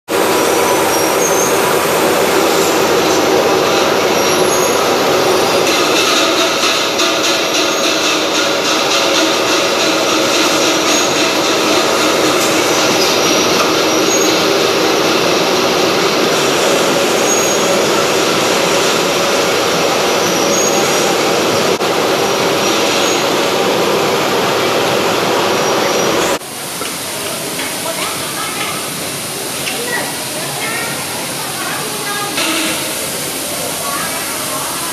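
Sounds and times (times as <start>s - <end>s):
machinery din: 0.2s - 26.4s, 32.2s - 33.5s.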